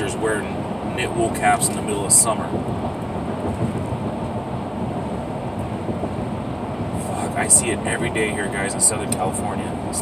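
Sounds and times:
road and engine rumble: 0.0s - 10.0s.

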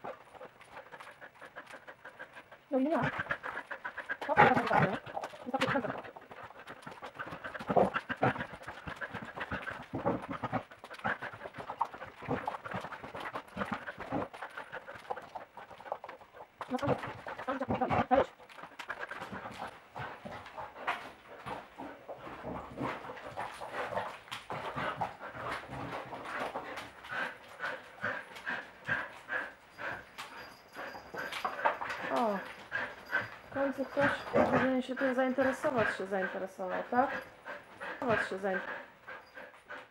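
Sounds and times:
dog panting: 0.0s - 39.9s
dog paws scrabbling on floor: 3.0s - 38.7s.

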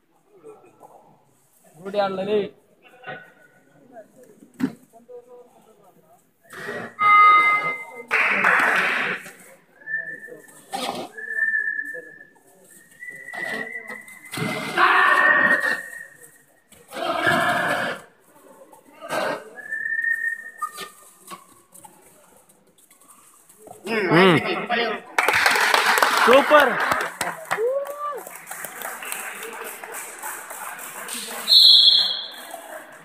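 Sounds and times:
high whistle tones: 7.0s - 8.1s, 11.2s - 14.5s, 31.4s - 32.6s.

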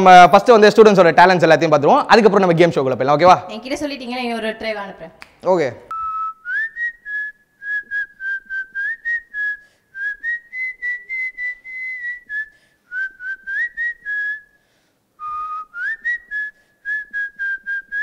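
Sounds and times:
woman whistling a tune: 5.9s - 14.6s, 15.2s - 18.0s.

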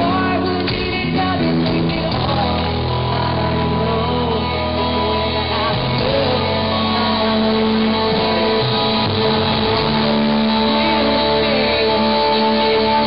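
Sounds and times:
live rock band through pa: 0.0s - 13.0s
low bass line: 0.0s - 13.0s
person singing melody: 0.0s - 13.0s.

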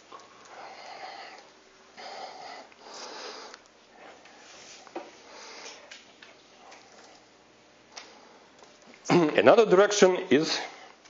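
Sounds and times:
person sniffing and breathing: 2.0s - 5.9s.

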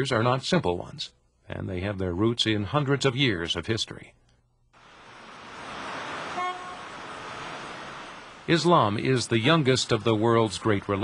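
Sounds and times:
passing cars: 4.8s - 11.0s
car horn toot: 6.1s - 7.0s.

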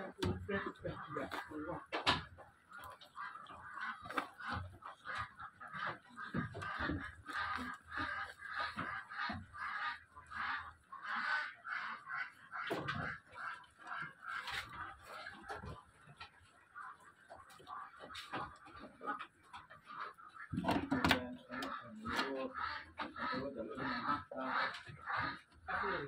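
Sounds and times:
farm birds honking: 0.0s - 26.0s.

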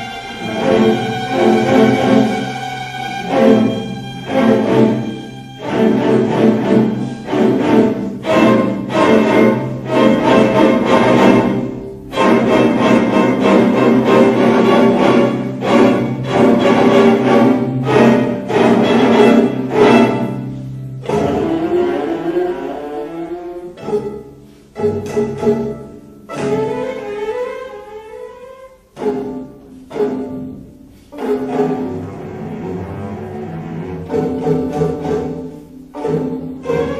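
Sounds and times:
string orchestra playing: 0.0s - 36.9s.

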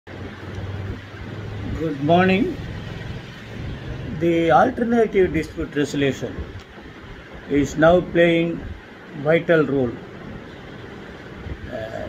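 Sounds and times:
steady low hum: 0.1s - 12.0s
man speaking: 1.7s - 2.6s, 4.1s - 6.4s, 7.5s - 10.0s, 11.7s - 12.0s.

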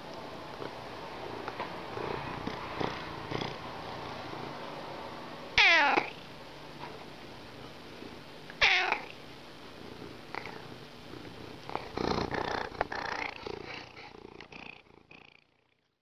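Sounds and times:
cat chirps: 5.6s - 6.2s, 8.6s - 9.1s
cat meowing: 5.6s - 6.2s, 8.6s - 9.1s.

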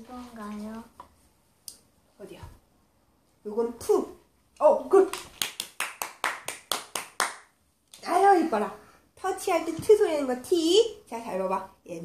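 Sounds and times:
woman clapping hands: 5.1s - 7.5s.

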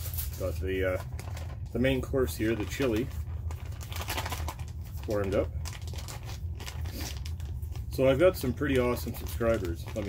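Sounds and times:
foil pouch crinkling: 0.0s - 10.0s
steady low hum: 0.0s - 10.0s.

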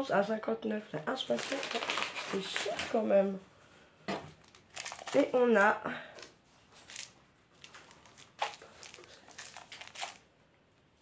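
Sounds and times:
food packaging rustling: 1.2s - 3.4s, 4.3s - 5.5s, 6.2s - 10.4s.

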